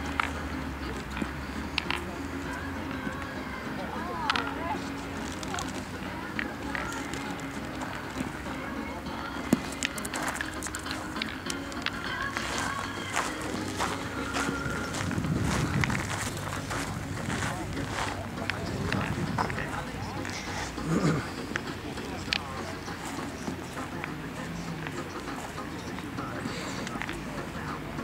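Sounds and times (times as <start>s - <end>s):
metal boules clacking on gravel: 0.0s - 3.3s, 4.0s - 8.4s, 9.2s - 24.2s
low voices talking: 0.0s - 28.0s.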